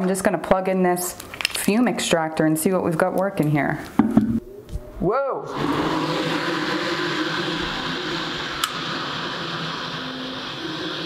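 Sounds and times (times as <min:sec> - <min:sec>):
extractor fan running: 0:05.5 - 0:11.0.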